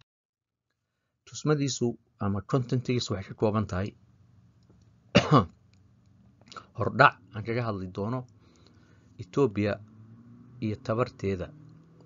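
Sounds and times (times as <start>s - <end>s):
man clearing his throat: 5.1s - 5.6s.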